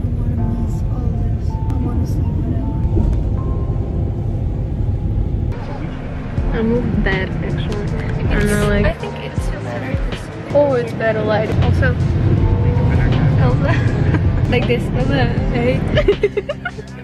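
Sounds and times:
people talking: 0.0s - 3.1s, 5.6s - 12.0s, 12.8s - 17.0s
bus engine and road rumble: 0.0s - 17.0s.

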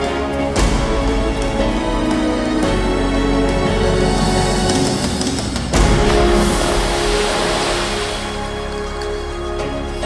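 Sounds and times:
soundtrack music with held tones: 0.0s - 10.0s
loud rushing whoosh: 5.6s - 9.0s.

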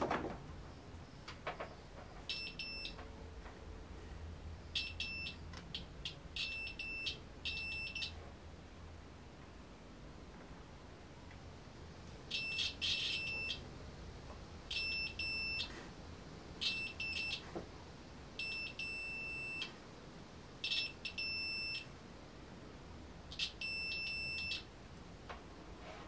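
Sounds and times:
multimeter continuity beeps: 1.2s - 3.1s, 4.7s - 8.2s, 12.3s - 13.7s, 14.7s - 15.7s, 16.6s - 17.5s, 18.4s - 19.8s, 20.6s - 21.9s, 23.3s - 24.8s.

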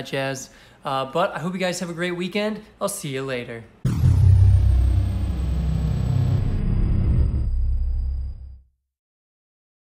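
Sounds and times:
deep bass rumble: 3.9s - 8.6s
high tone gliding down: 3.9s - 8.6s.

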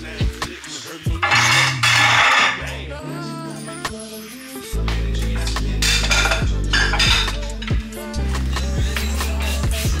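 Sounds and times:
background music with deep bass: 0.0s - 10.0s
dishes and utensils clinking: 1.1s - 2.7s, 5.8s - 7.8s.

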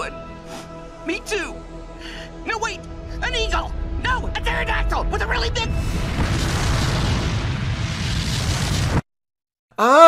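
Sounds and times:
cartoon explosion rumble: 6.0s - 9.0s.

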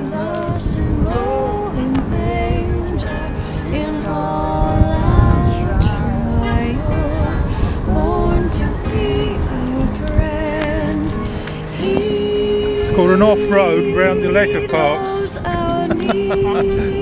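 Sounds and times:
instrumental backing: 0.0s - 17.0s
person singing carol: 0.0s - 17.0s
wind and road noise: 0.4s - 12.0s.

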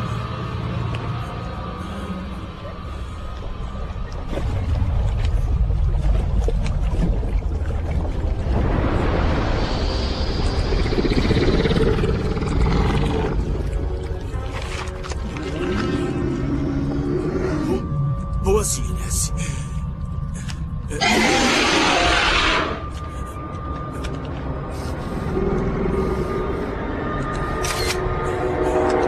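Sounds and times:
film music: 0.0s - 29.0s
low rumble: 0.0s - 29.0s
creature growl: 20.9s - 22.8s
creature roar: 21.0s - 22.8s.

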